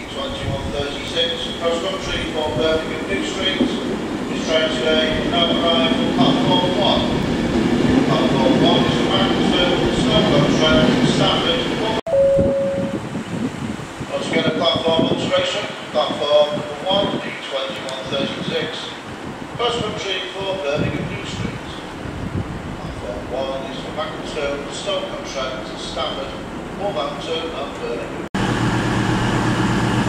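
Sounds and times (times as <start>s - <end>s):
voices: 0.0s - 7.2s, 22.8s - 28.2s
passenger train rumbling: 0.0s - 30.0s.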